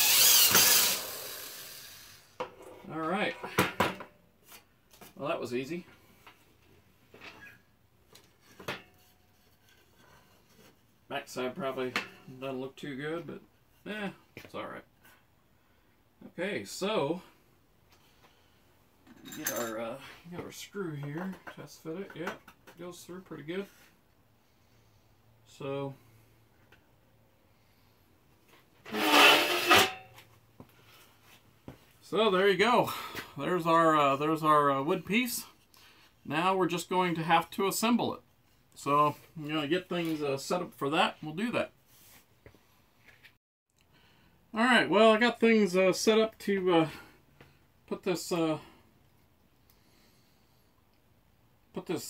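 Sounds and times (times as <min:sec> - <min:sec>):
wooden board scraping wood: 0:28.9 - 0:30.1.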